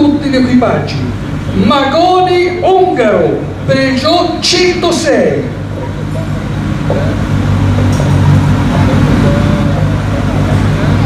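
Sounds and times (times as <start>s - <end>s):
rally car engine idling: 0.0s - 11.0s.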